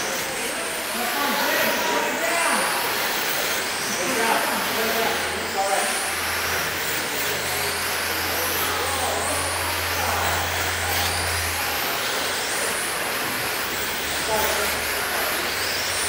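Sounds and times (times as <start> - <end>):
rc car motors whining: 0.0 - 16.0.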